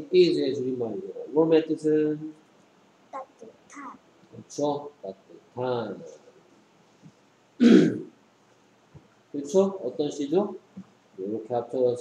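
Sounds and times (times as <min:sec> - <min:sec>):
person clearing throat: 0:07.6 - 0:08.1.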